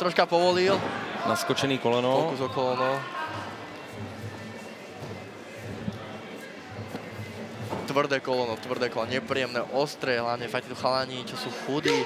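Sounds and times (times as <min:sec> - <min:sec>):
faint voices: 0:00.0 - 0:12.0.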